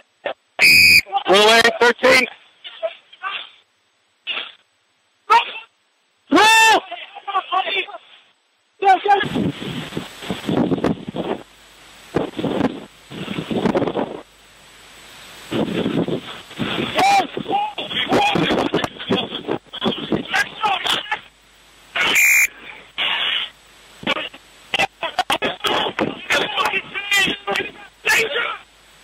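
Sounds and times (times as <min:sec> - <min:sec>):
whistle blast: 0:00.6 - 0:01.1, 0:22.0 - 0:22.5
wind noise: 0:09.2 - 0:11.5, 0:12.1 - 0:14.3, 0:15.4 - 0:20.3.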